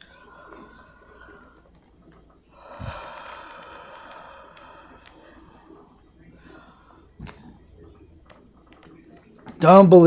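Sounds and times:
man breathing out heavily: 0:02.6 - 0:05.8.

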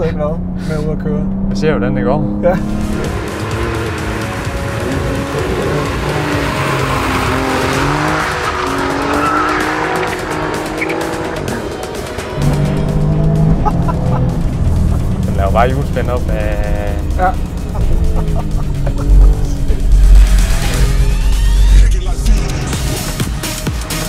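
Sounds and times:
background music: 0:01.6 - 0:24.0
car engine revving hard: 0:02.2 - 0:23.2.

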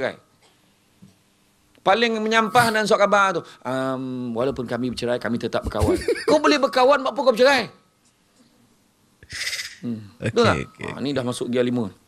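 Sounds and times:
man saying hmm: 0:09.8 - 0:11.0.

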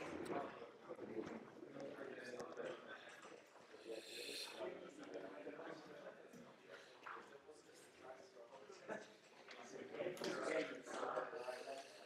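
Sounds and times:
faint indistinct talk: 0:00.0 - 0:12.0.

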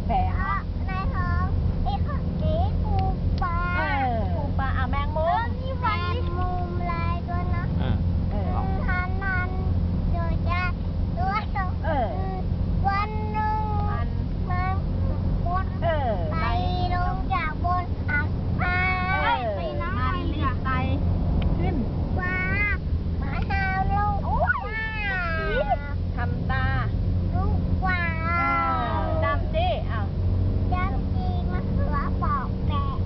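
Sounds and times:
car engine rumble: 0:00.0 - 0:33.0
road noise: 0:00.0 - 0:33.0
toddler singing: 0:08.5 - 0:14.8.

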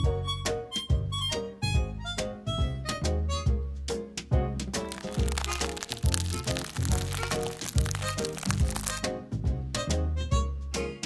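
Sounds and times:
plastic piping bag crinkling: 0:04.8 - 0:09.0.

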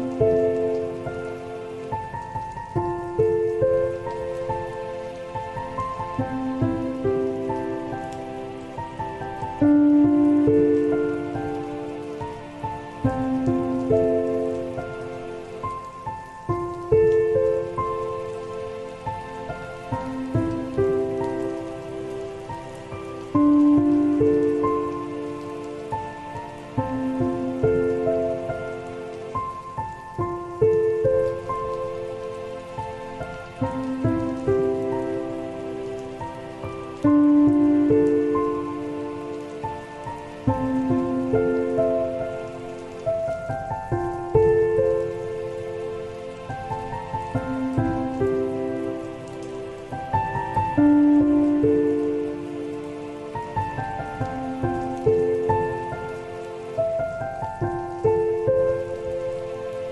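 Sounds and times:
rain: 0:00.0 - 0:59.9
soft solo piano: 0:00.0 - 0:59.9.

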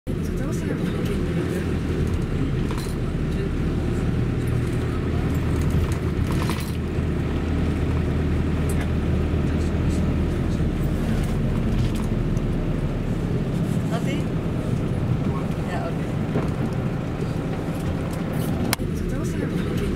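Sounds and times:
car engine and tyres rumbling: 0:00.1 - 0:19.9.

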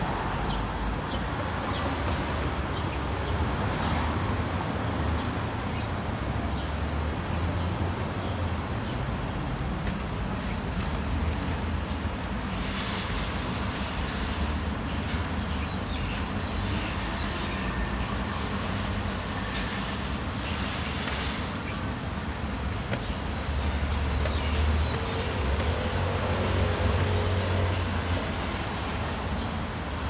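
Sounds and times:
road traffic rumble: 0:00.0 - 0:30.0.

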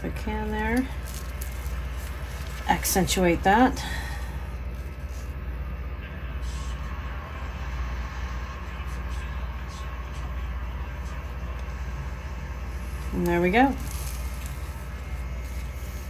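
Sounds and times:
exhaust fan humming: 0:00.0 - 0:16.0.

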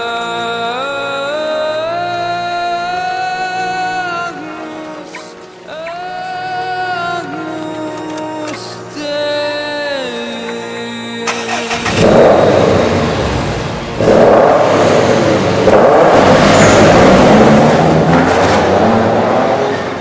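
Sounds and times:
car engine revving loudly: 0:11.2 - 0:20.0.

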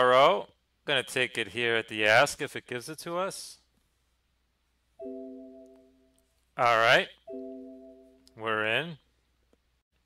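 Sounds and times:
electronic alert chime: 0:05.0 - 0:06.1, 0:07.3 - 0:08.2.

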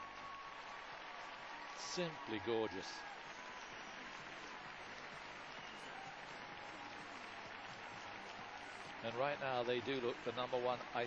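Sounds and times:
crowd applauding: 0:00.0 - 0:11.0.

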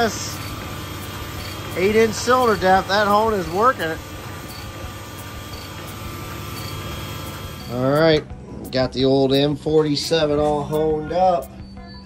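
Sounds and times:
cylinder hone running: 0:00.0 - 0:08.0.

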